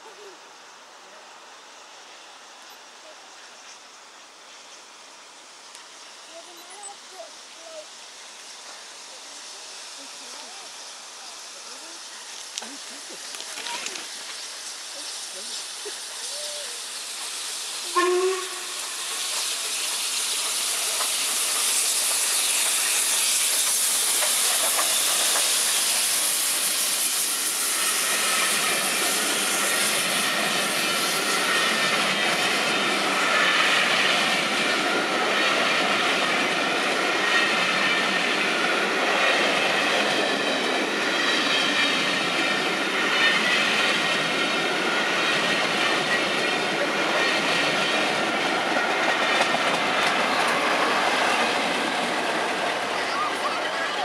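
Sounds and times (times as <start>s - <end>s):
steam locomotive hissing: 0.0s - 54.0s
diesel locomotive passing: 0.2s - 54.0s
train wheels rolling on rails: 2.0s - 54.0s.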